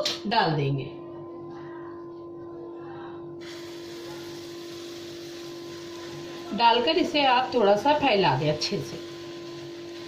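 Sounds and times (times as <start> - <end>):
egg sizzling in hot oil: 3.4 - 10.0.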